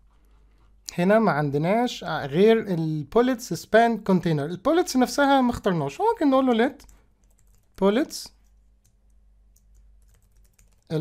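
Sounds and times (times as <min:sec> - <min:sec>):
faint keyboard typing: 0:06.8 - 0:11.0.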